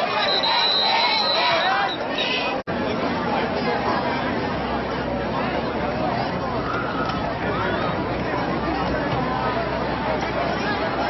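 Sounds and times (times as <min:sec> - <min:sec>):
shrill whistle: 0:00.0 - 0:02.5
crowd shouting and cheering: 0:00.0 - 0:02.6, 0:06.2 - 0:11.0.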